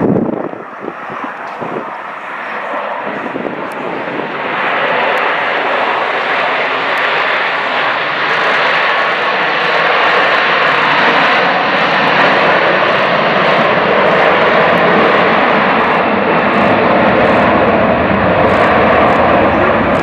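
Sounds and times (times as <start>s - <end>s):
jet engine roar: 0.0s - 20.0s.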